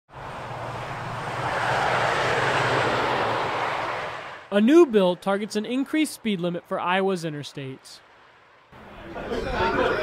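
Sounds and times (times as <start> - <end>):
vehicle passing close by: 0.1 - 4.5.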